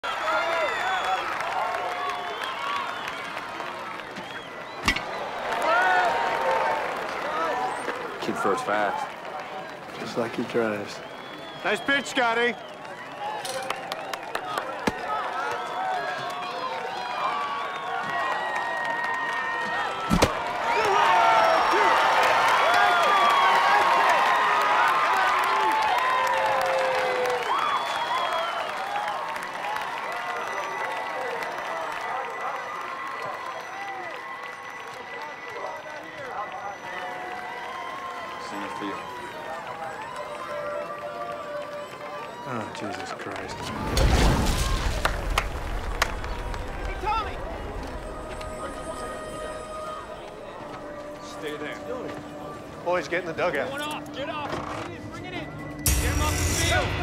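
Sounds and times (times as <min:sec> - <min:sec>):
crowd calling and cheering: 0:00.0 - 0:57.0
bat crack: 0:20.0 - 0:21.0.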